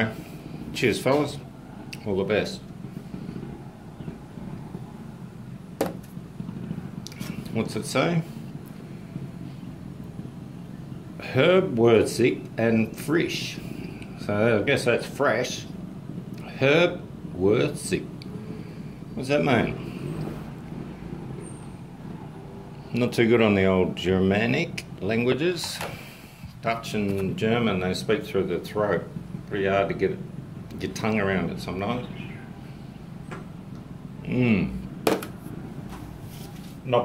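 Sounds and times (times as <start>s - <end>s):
low background hum: 0.0s - 37.0s
low motor rumble: 0.0s - 37.0s.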